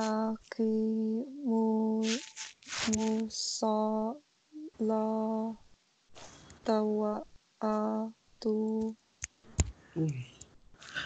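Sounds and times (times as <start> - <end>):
person reciting in chant: 0.0 - 5.6, 6.7 - 9.0, 10.0 - 11.0.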